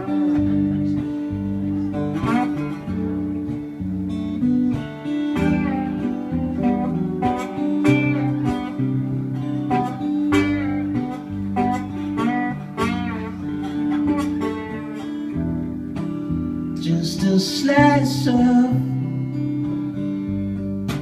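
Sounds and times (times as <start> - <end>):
acoustic guitar strumming: 0.0 - 21.0
lap steel guitar: 0.0 - 21.0.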